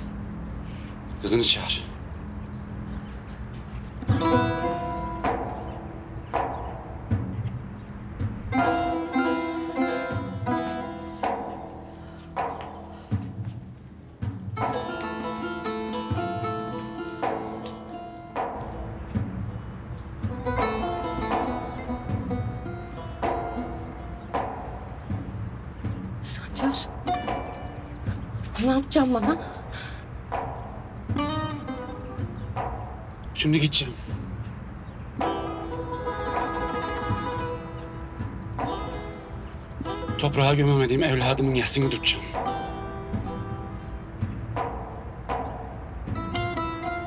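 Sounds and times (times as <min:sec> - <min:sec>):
plucked string notes: 0:04.0 - 0:13.0, 0:14.2 - 0:47.0.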